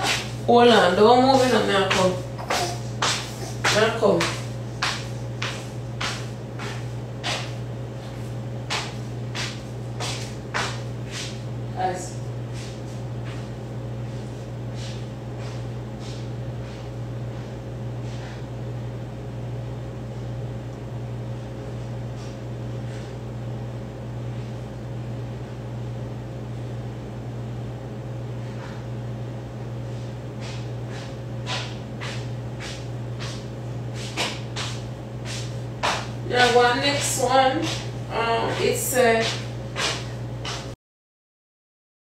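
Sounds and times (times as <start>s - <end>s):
low hum of a fan: 0.0s - 40.8s.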